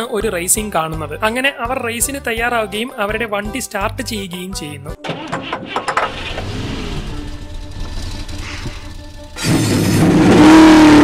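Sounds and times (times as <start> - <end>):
film soundtrack music: 0.0 - 10.4
car sounds: 5.0 - 11.0.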